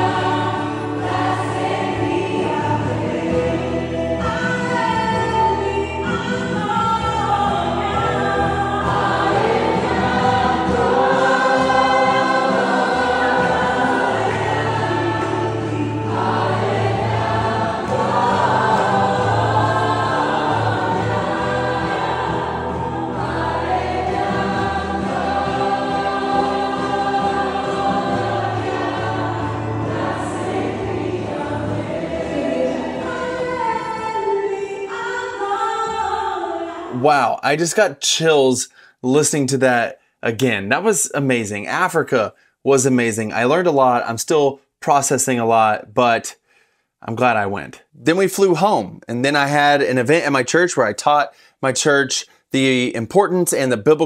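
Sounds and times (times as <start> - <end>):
congregation singing: 0.0 - 37.2.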